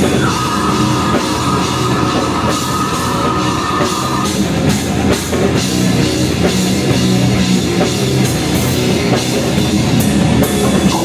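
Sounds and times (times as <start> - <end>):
distorted electric guitar: 0.0 - 11.0
drum kit: 0.0 - 11.0.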